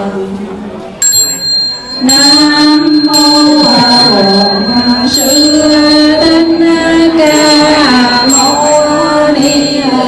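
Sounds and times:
singing: 0:00.0 - 0:10.0
small metal bell ringing: 0:01.0 - 0:10.0.

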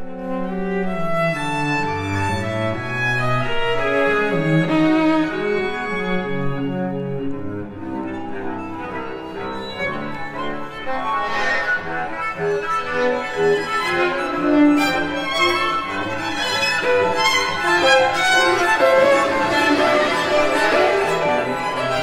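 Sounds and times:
string quartet playing: 0:00.0 - 0:22.0.

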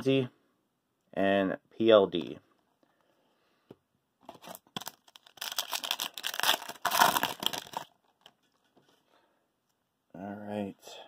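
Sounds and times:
foil wrapper tearing and crinkling: 0:04.5 - 0:08.3.

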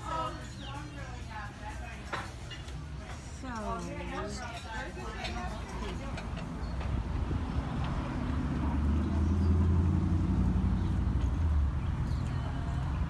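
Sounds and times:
vehicle engine humming: 0:05.0 - 0:13.0.

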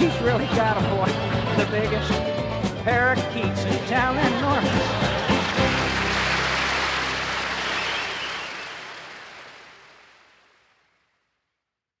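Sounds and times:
audience applauding: 0:04.2 - 0:10.9.

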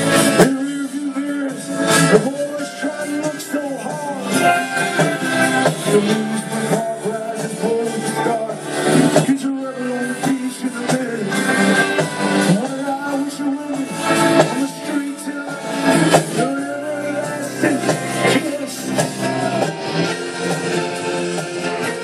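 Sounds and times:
man singing: 0:00.0 - 0:22.0
rock band over loudspeakers: 0:00.0 - 0:22.0.

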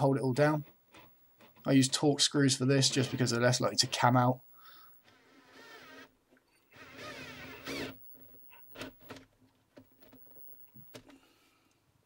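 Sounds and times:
cordless drill running: 0:05.0 - 0:06.1, 0:06.7 - 0:09.2.

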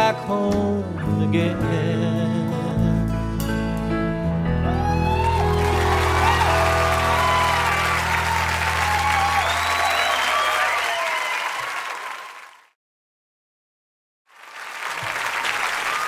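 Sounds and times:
audience applauding and cheering: 0:04.6 - 0:12.7, 0:14.3 - 0:16.0.

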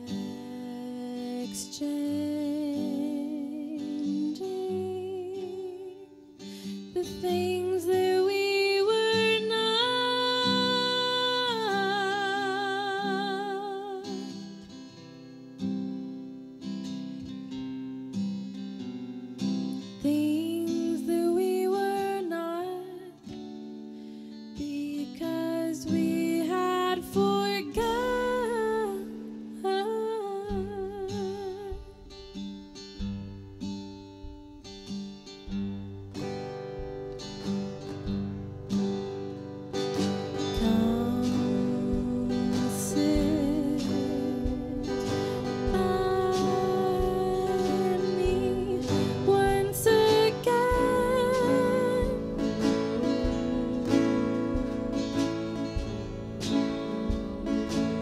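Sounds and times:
woman singing: 0:00.0 - 0:15.0, 0:19.6 - 0:23.8, 0:24.5 - 0:34.2, 0:37.2 - 0:58.0
strummed acoustic guitar: 0:00.0 - 0:58.0.

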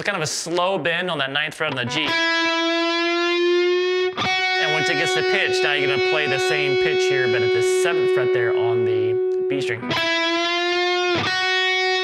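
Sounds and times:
electric guitar note bending: 0:01.7 - 0:12.0.

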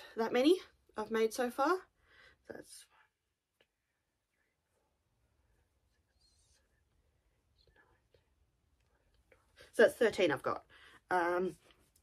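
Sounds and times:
faint whispering: 0:02.5 - 0:09.6.

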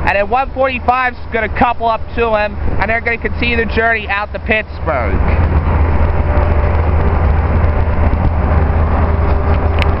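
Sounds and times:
low vehicle rumble: 0:00.0 - 0:10.0.

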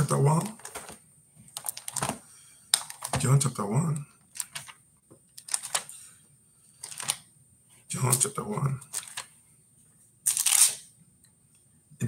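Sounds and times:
book page turning: 0:05.4 - 0:06.0, 0:06.8 - 0:07.2, 0:08.8 - 0:09.3, 0:10.3 - 0:10.8.

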